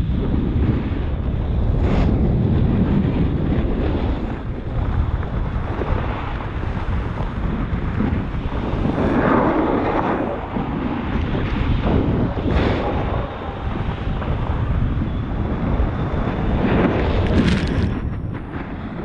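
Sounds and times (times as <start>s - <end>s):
wind buffeting microphone: 0.0s - 19.0s
snowboards sliding over snow: 0.2s - 19.0s.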